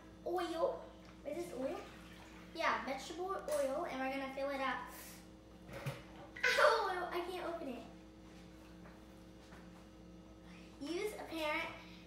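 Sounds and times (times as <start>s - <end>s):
girl's drawn-out wordless voice: 10.8s - 11.9s.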